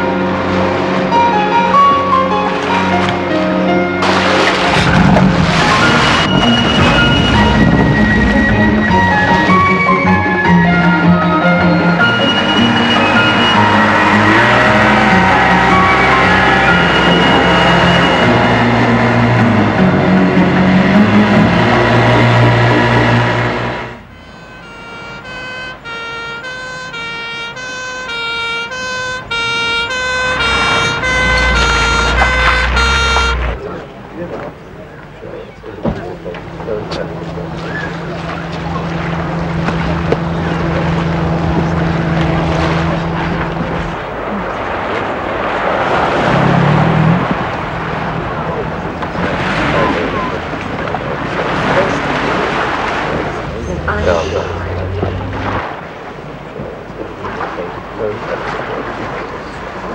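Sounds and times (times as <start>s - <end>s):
outboard engine running at speed: 0.0s - 26.6s, 29.2s - 59.9s
rushing water: 0.0s - 59.9s
wind: 0.0s - 59.9s
two-tone ambulance siren: 5.6s - 19.9s, 24.0s - 33.7s.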